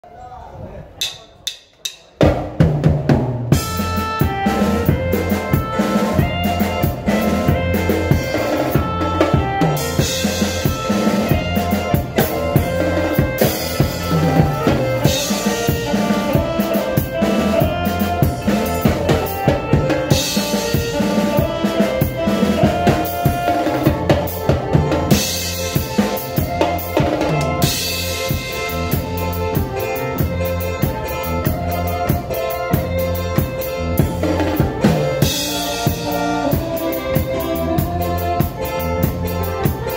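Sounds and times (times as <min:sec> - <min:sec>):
band instruments holding notes: 0:00.0 - 0:39.9
drum kit groove: 0:01.0 - 0:39.9.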